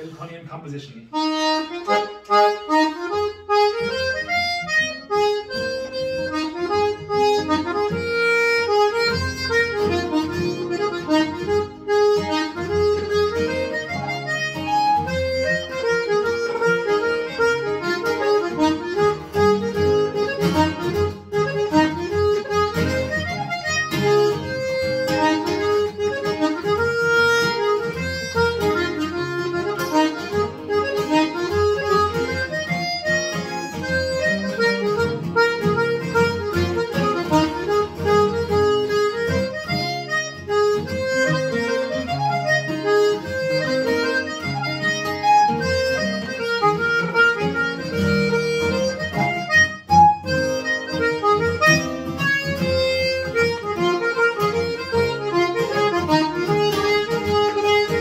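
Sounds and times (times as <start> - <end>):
acoustic guitar accompaniment: 0.0 - 58.0
button accordion waltz: 1.1 - 58.0.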